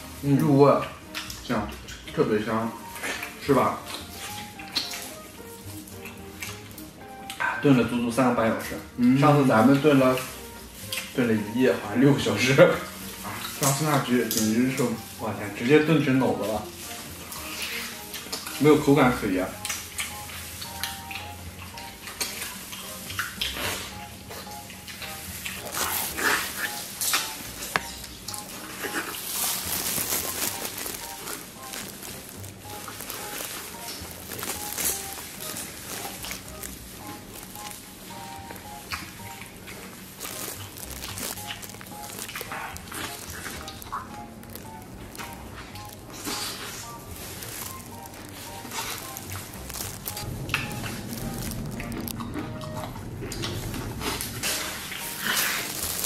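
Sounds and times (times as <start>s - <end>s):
light background music: 0.0s - 56.0s
man chewing: 0.8s - 2.1s, 2.7s - 7.6s, 10.2s - 11.2s, 12.8s - 15.2s, 16.6s - 56.0s.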